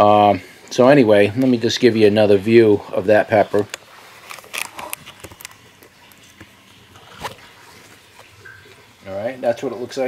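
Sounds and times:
leaves rustling against camera: 2.5 - 8.9
camera handling noise: 3.6 - 5.6.

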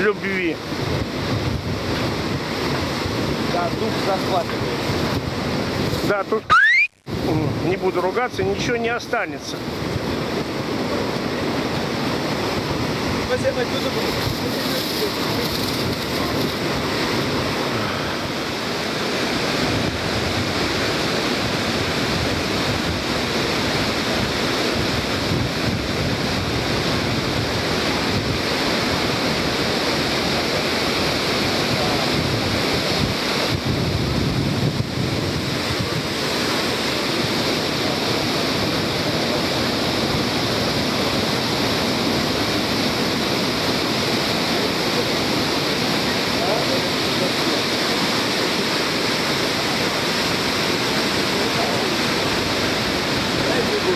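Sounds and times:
waterfall rushing: 1.8 - 33.8, 34.5 - 53.9.

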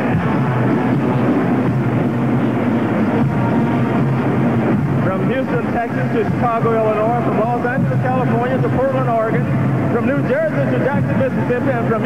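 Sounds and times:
drums: 0.0 - 12.0
marching band playing: 0.0 - 12.0.

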